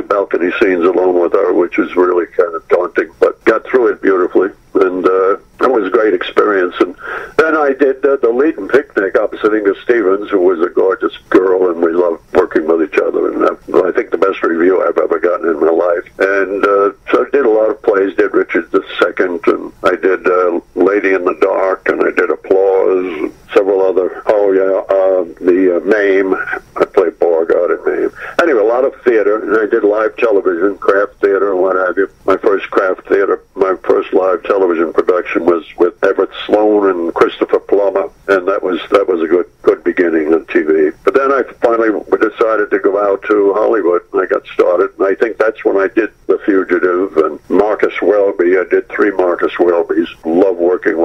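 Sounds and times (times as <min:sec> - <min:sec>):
man talking over telephone: 0:00.0 - 0:51.0.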